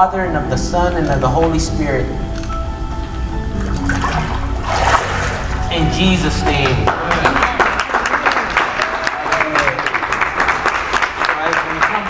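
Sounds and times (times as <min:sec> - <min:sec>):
background music: 0:00.0 - 0:12.0
water splashing and sloshing: 0:03.5 - 0:05.9.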